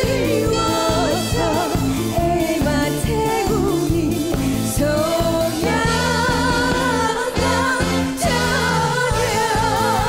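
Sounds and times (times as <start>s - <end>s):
live band with bass and drums: 0.0s - 10.0s
woman singing with vibrato: 0.0s - 10.0s.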